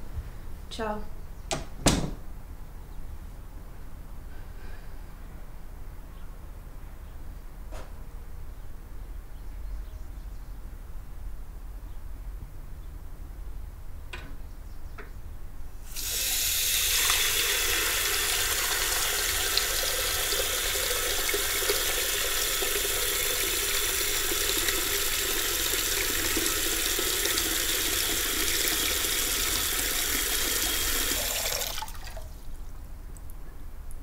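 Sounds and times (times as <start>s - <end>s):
tap running into washbasin: 15.9s - 32.4s.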